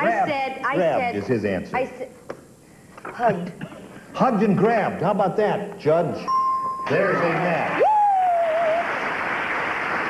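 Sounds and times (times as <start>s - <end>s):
audience applauding: 7.2s - 10.0s.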